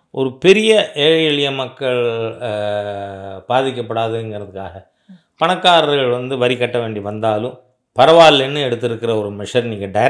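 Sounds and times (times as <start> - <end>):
man talking slowly: 0.2 - 4.8.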